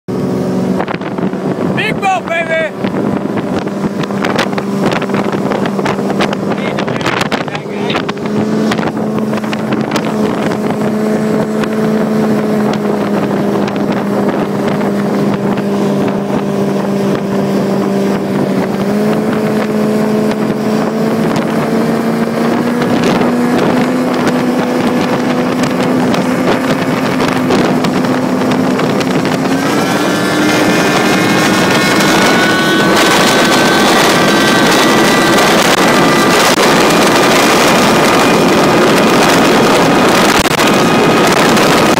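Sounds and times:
speedboat engine running hard: 0:00.1 - 0:41.9
wind buffeting microphone: 0:00.1 - 0:41.9.

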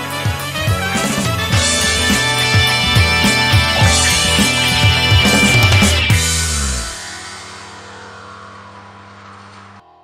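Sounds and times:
rock music chord ringing out: 0:00.8 - 0:09.3.

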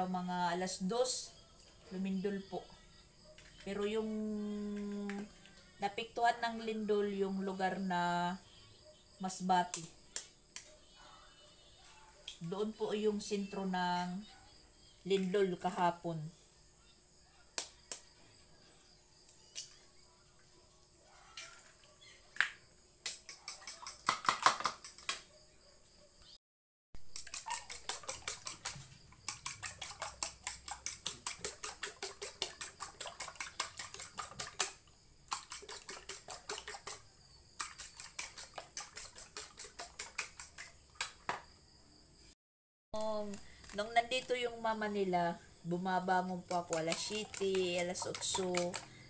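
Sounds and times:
fork beating eggs in bowl: 0:23.0 - 0:25.1, 0:27.0 - 0:41.2, 0:46.0 - 0:49.0.

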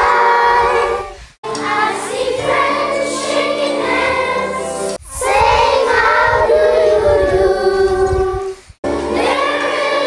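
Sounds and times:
children singing in unison: 0:00.0 - 0:10.0.

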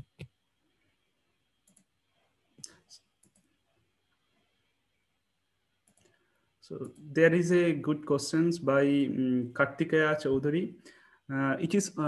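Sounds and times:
faint computer clicks: 0:01.6 - 0:01.9, 0:02.6 - 0:03.6, 0:05.8 - 0:06.2
man speaking: 0:06.6 - 0:12.0.

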